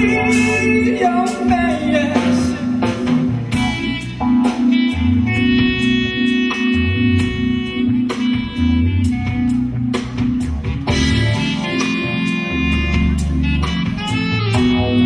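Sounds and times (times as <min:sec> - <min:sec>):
jazz fusion band playing: 0:00.0 - 0:15.0.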